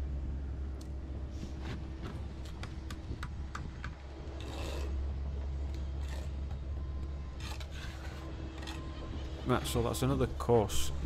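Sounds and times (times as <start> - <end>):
steady low rumble: 0.0 - 11.0
trowel scraping concrete blocks: 4.4 - 5.0, 5.7 - 6.6, 7.3 - 9.8.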